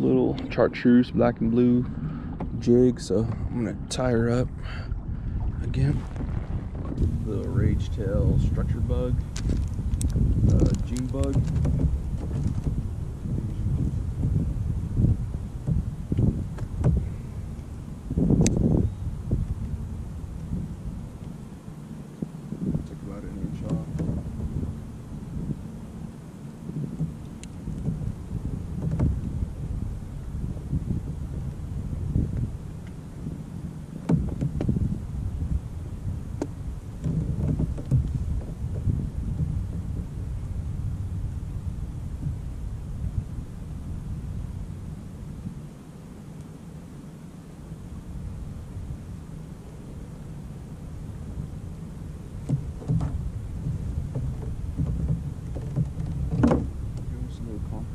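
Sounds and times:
wind buffeting microphone: 0.0s - 46.2s, 47.6s - 57.9s.

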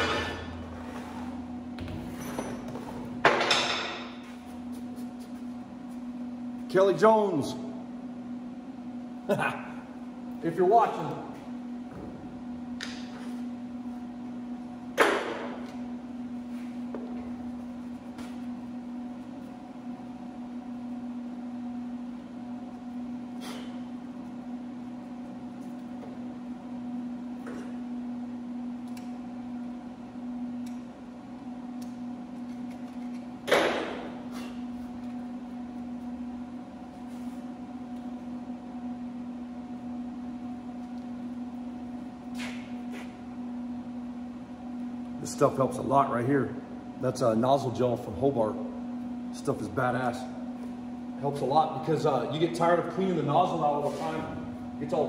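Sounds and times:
electrical hum: 0.0s - 55.0s.

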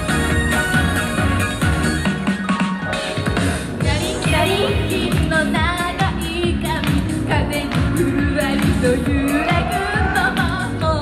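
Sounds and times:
backing track with dance beat: 0.0s - 11.0s
female voices singing pop: 3.8s - 11.0s.

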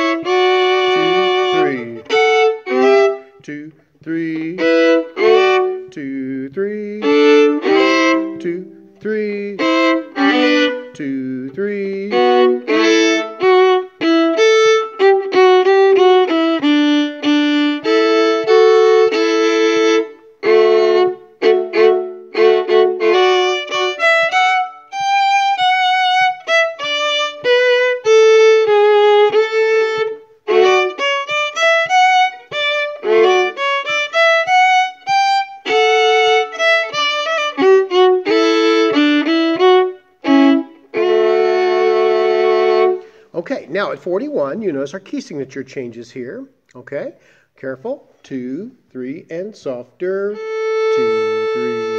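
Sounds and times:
solo violin dance tune: 0.0s - 45.1s, 49.7s - 51.9s.

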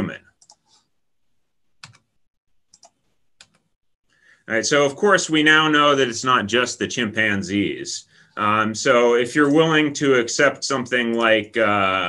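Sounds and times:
computer keyboard clicking: 1.8s - 2.1s, 2.7s - 3.6s.

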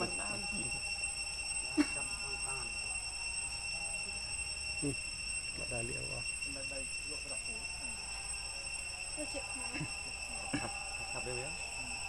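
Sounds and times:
high-pitched drone: 0.0s - 12.0s.

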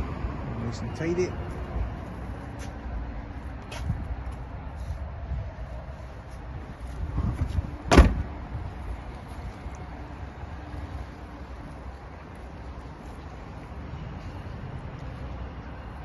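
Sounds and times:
car tailgate slamming: 7.9s - 8.3s.

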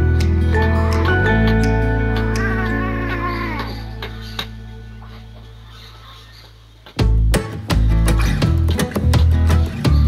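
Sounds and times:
soft background music: 0.0s - 10.0s
cat meowing: 2.4s - 4.3s.

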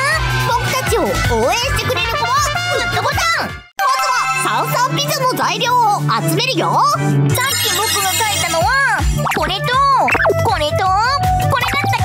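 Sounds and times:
electronic chime jingle: 3.8s - 5.1s.

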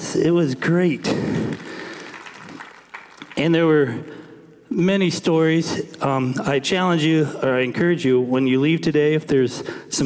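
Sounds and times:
congregation clapping: 0.6s - 4.3s.

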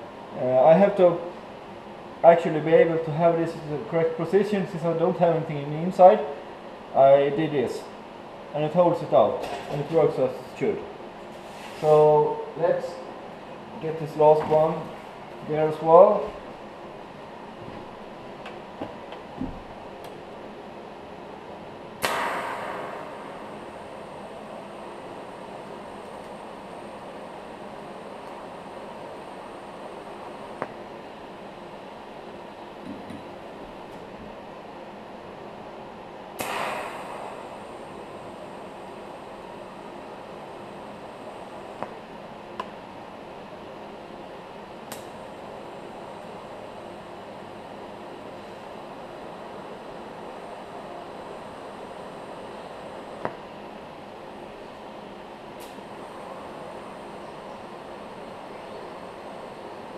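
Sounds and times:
sharp loud crack: 22.0s - 24.2s, 36.4s - 37.9s
welding arc hissing: 36.4s - 39.2s.

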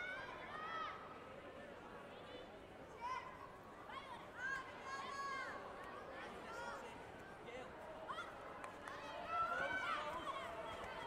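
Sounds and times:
murmur of sports hall: 0.0s - 11.0s.

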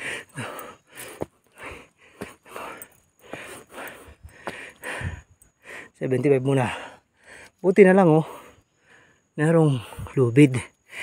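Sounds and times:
person breathing hard: 0.0s - 6.0s.

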